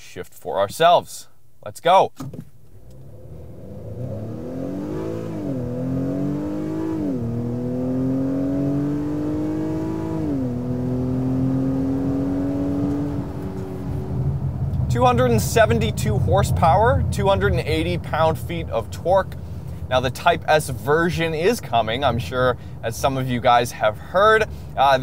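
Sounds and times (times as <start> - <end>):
car engine accelerating: 2.7 - 20.9.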